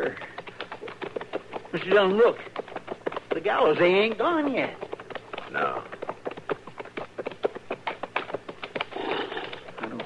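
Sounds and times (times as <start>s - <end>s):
footsteps sharp taps: 0.0s - 10.0s.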